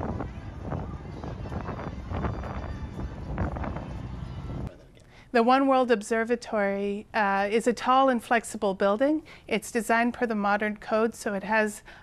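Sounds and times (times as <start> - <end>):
wind buffeting microphone: 0.0 - 4.7
city background noise: 0.0 - 11.9.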